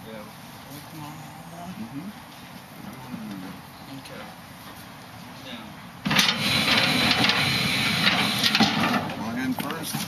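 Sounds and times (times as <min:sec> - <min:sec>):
hydraulic pump whining: 0:06.0 - 0:10.0.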